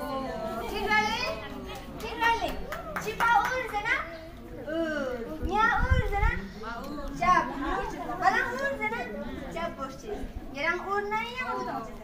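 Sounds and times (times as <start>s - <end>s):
group of people talking and calling: 0.0s - 12.0s.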